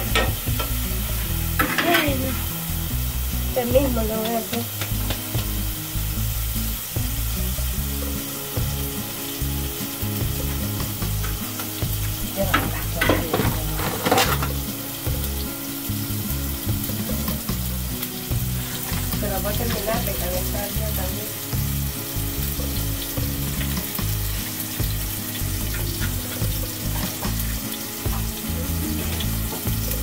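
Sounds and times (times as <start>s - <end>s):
food sizzling on a griddle: 0.0s - 30.0s.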